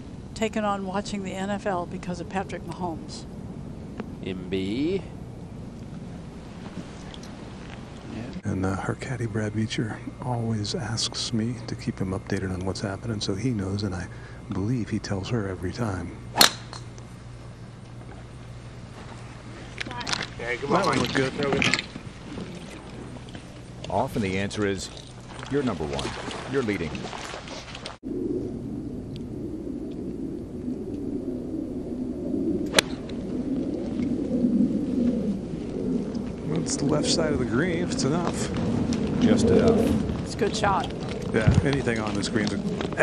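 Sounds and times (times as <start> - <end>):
wind rumbling on microphone: 0.0 - 43.0
golf club striking ball: 16.3 - 17.0, 32.7 - 33.2.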